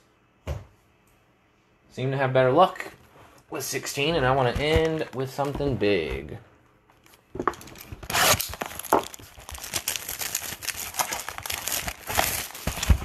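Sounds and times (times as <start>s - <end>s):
packaging crinkling: 7.0s - 13.0s
foil wrapper ripping: 7.6s - 13.0s.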